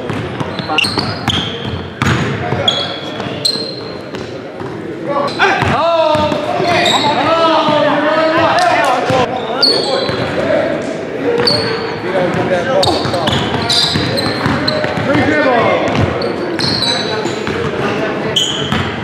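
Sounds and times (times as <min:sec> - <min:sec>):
sneakers squeaking: 0:00.0 - 0:10.6, 0:11.2 - 0:19.0.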